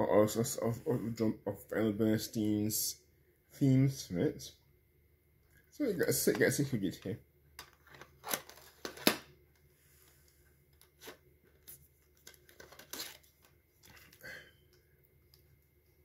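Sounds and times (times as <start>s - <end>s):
plastic cassette cases clicking: 7.6s - 9.2s.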